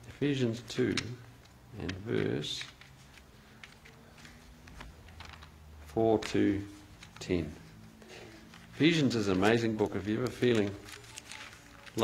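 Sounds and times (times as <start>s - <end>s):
book pages turning: 0.8s - 12.0s.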